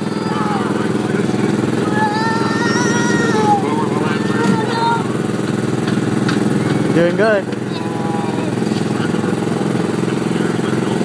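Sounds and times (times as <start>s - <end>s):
go-kart engine running: 0.0s - 11.0s.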